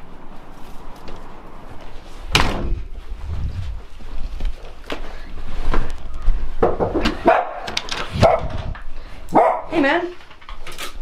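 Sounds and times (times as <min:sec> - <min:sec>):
dog barking: 0:07.2 - 0:08.6, 0:09.3 - 0:09.8.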